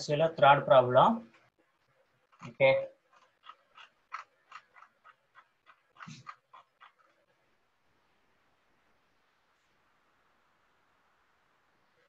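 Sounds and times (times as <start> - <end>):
mouse scroll wheel clicking: 2.3 - 7.2.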